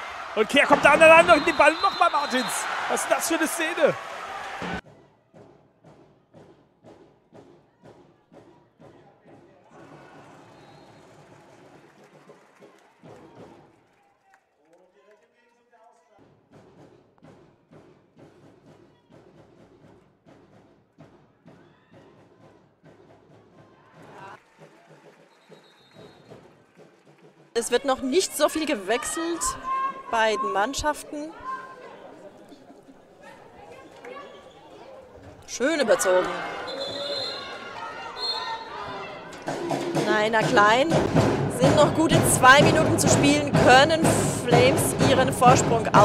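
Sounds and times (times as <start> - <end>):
crowd voices: 0.0 - 4.8, 27.6 - 46.0
rhythmic crowd thuds: 0.0 - 10.3, 35.1 - 46.0.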